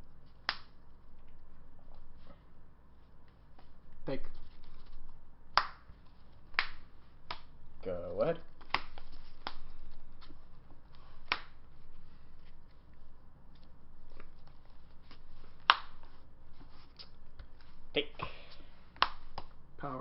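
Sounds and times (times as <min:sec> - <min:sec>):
cards rustling: 0:03.3 - 0:05.2, 0:08.4 - 0:19.6
cards clicking and snapping: 0:08.6 - 0:11.6.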